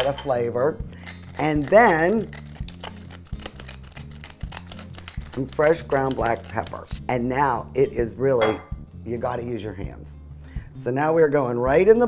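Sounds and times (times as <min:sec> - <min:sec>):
pepper mill grinding: 0:00.9 - 0:07.1.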